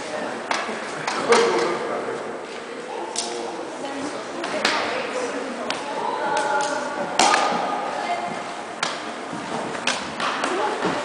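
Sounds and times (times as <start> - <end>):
indoor hall background noise: 0.0 - 11.0.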